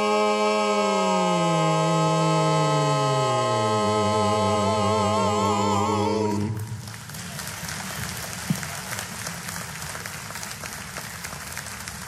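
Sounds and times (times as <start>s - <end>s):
congregation clapping: 6.3s - 12.0s.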